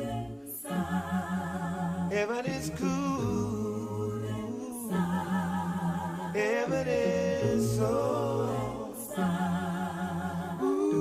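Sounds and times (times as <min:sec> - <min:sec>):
a cappella voices singing: 0:00.0 - 0:11.0.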